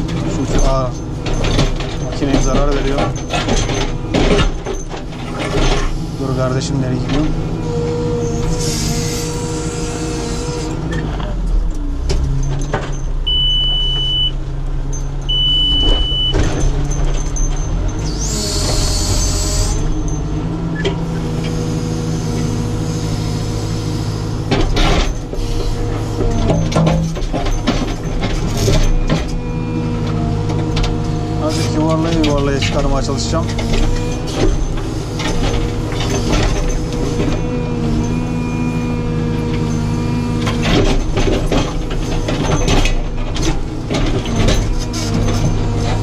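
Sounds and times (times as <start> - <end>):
diesel engine running under load: 0.0 - 46.0
hydraulics whining: 0.0 - 46.0
short high beeps: 13.3 - 14.4, 15.3 - 16.4.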